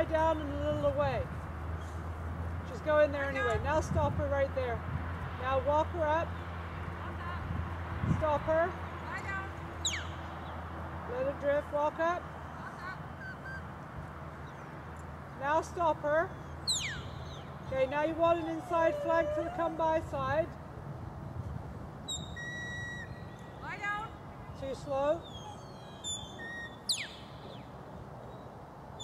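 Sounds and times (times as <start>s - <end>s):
low outdoor rumble: 0.0s - 26.4s
faint bird calls: 12.4s - 13.8s, 16.3s - 20.0s, 25.2s - 28.6s
sheepdog whistle notes: 22.1s - 23.2s.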